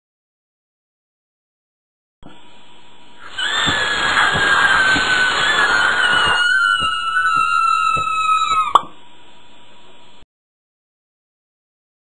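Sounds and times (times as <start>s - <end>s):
cartoon suction hiss: 3.2s - 8.9s
falling whistling tone: 3.2s - 8.9s.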